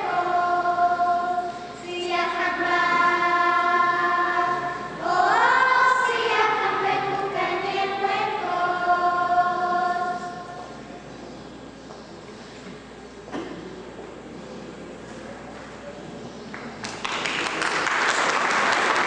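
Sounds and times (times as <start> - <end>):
children's choir singing: 0.0 - 10.9.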